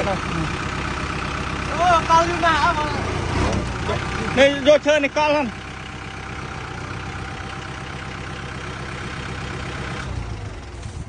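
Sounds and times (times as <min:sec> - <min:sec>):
tractor diesel engine running: 0:00.0 - 0:11.0.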